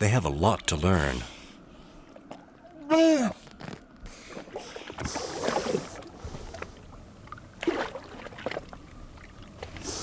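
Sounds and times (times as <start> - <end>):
slushy water splashing: 7.6 - 9.8.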